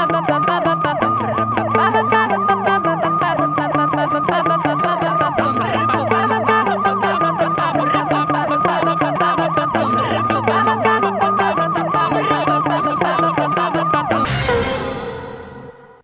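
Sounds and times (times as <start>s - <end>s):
siren yelping: 0.0s - 15.7s.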